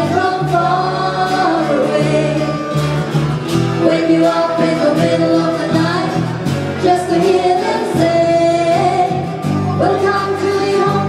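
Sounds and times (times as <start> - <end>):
acoustic guitar: 0.0 - 11.0
woman singing: 0.0 - 11.0.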